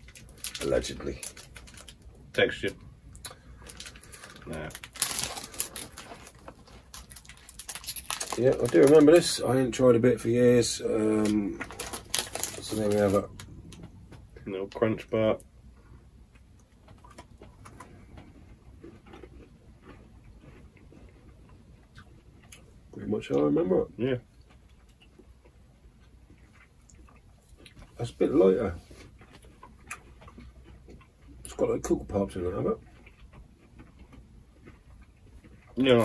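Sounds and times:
wrapper tearing: 0.0 - 2.0, 3.6 - 9.4, 11.1 - 13.5
wrapper crackling: 0.0 - 2.1, 3.2 - 13.8
chewing crunchy chocolate: 0.0 - 36.0.

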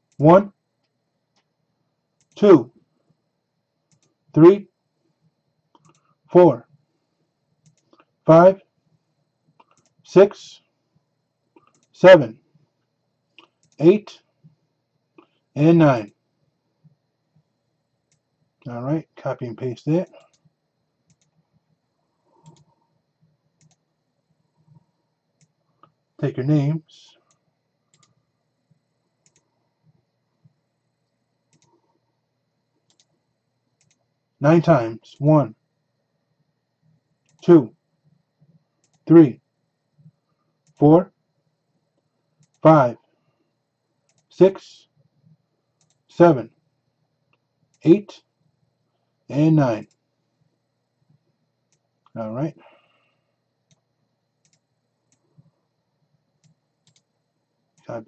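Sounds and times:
computer mouse clicks: 2.2 - 2.4, 3.9 - 4.2, 5.7 - 6.2, 7.6 - 8.1, 9.6 - 10.0, 11.5 - 11.9, 13.3 - 13.8, 20.1 - 21.5, 22.4 - 23.9, 25.4 - 26.0, 27.3 - 30.0, 31.5 - 31.8, 32.8 - 33.2, 33.8 - 34.1, 37.2 - 37.4, 38.0 - 39.1, 40.0 - 40.8, 42.3 - 42.6, 44.0 - 44.3, 45.8 - 46.0, 53.6 - 53.8, 54.4 - 55.5, 56.4 - 57.1.

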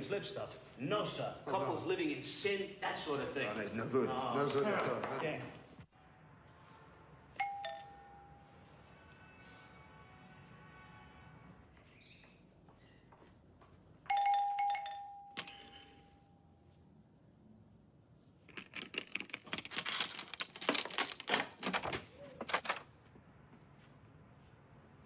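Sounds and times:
doorbell chime: 7.4 - 8.6, 14.1 - 16.4
door locks clicking and rattling: 18.5 - 22.8.

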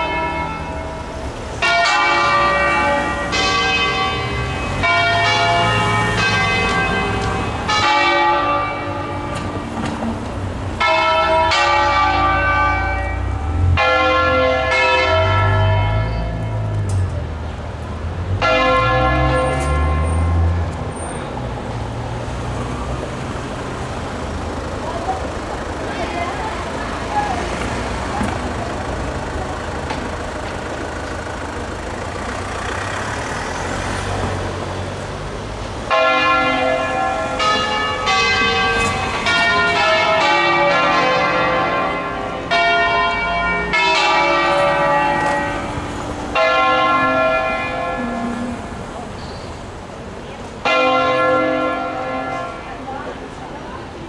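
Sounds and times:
church bells ringing: 0.0 - 17.1, 18.2 - 34.6, 35.4 - 49.6, 50.5 - 54.0
road vehicle rumble and hiss: 0.0 - 54.0.

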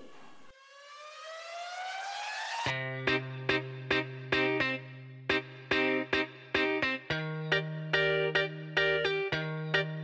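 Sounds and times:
siren-like rising tone: 0.5 - 2.7.

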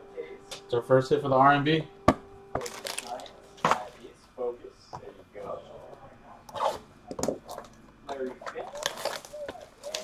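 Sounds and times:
cardboard scraping on cardboard: 6.5 - 6.9.

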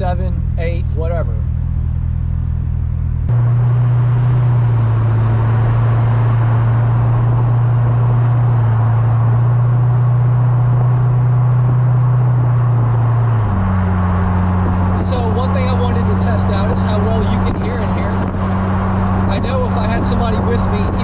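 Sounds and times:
car engine droning at cruise: 0.0 - 21.0
road noise: 0.0 - 21.0
wind noise: 3.3 - 21.0.

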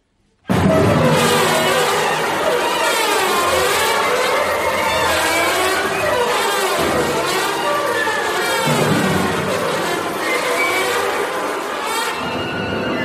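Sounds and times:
symphony orchestra playing loudly: 0.5 - 13.0.

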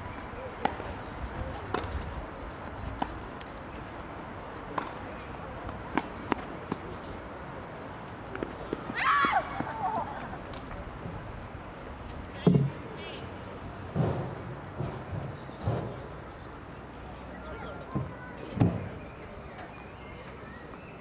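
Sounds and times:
outdoor background noise: 0.0 - 21.0
rackets hitting tennis ball: 4.7 - 7.0.

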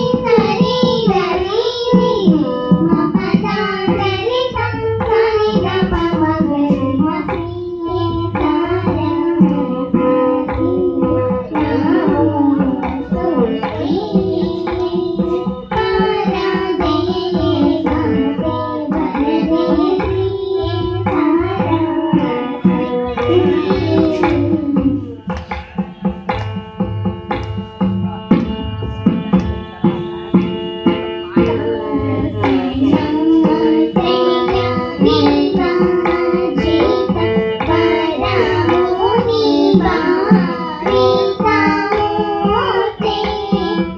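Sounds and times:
girls singing together: 0.0 - 25.2, 31.3 - 43.9
hand drum rhythm: 0.0 - 43.9
string instrument melody: 0.0 - 43.9.

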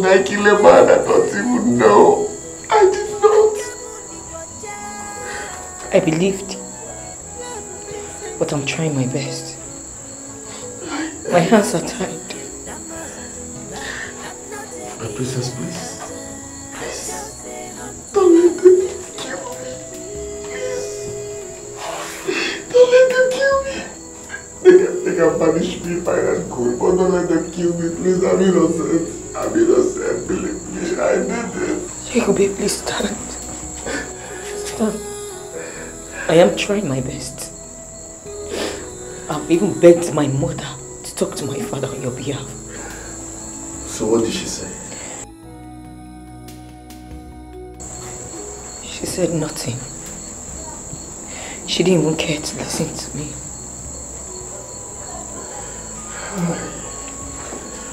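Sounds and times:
voices speaking: 0.0 - 45.6, 47.8 - 57.9
high-pitched hum: 0.0 - 57.9
soft background music: 0.0 - 57.9
steady high-pitched whine: 0.0 - 57.9
man wailing and sobbing: 1.3 - 2.4, 28.0 - 32.0.

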